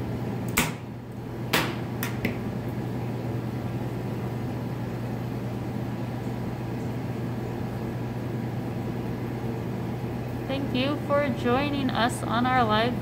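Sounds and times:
low machine hum: 0.0 - 13.0.

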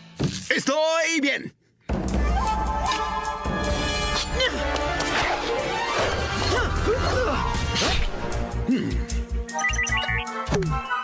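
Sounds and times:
action music: 1.9 - 11.0.

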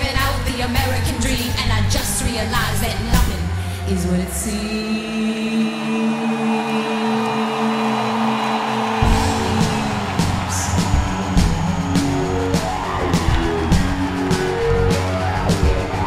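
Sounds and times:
live pop-rock band: 9.0 - 16.0.

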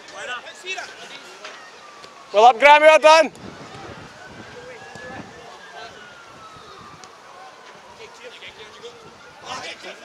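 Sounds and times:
faint siren tone: 0.2 - 10.0.

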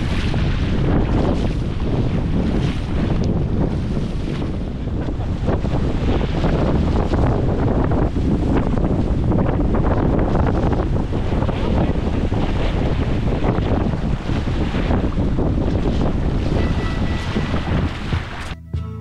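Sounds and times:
paddle strokes splashing: 0.0 - 7.3, 10.3 - 18.6
wind buffeting microphone: 0.0 - 18.6.

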